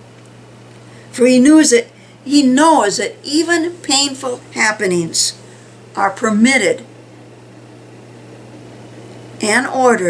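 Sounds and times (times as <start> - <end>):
low hum with hiss: 0.0 - 10.0.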